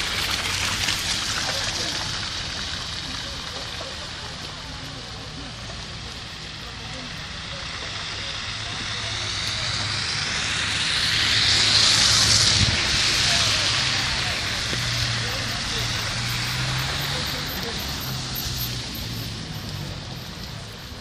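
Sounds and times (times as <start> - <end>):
car tyres hissing on wet road: 0.0 - 21.0.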